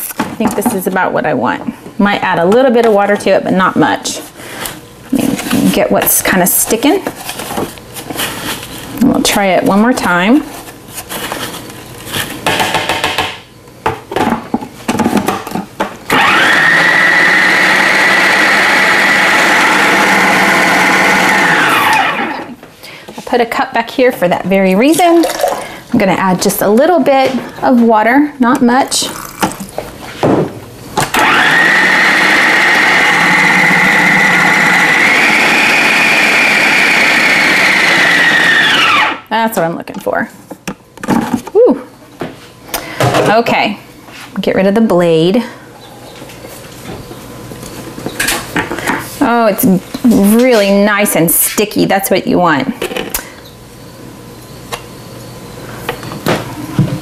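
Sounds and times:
food processor whining: 16.1s - 22.6s, 31.1s - 39.3s
water pouring: 25.2s - 25.7s, 29.1s - 29.7s.

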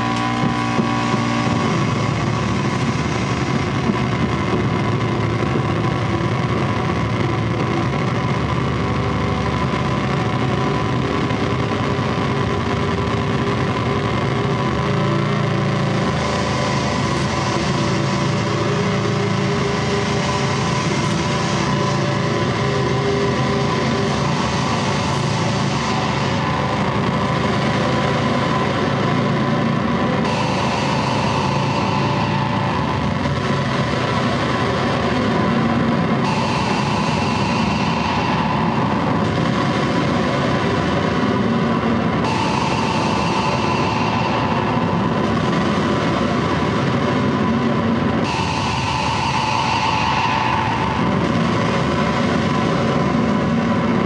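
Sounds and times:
low drone: 0.0s - 54.0s
wall of distorted noise: 0.0s - 54.0s.

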